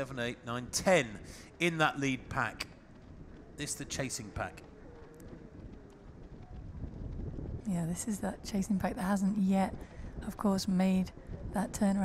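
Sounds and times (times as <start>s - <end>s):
low road rumble: 0.0s - 12.0s.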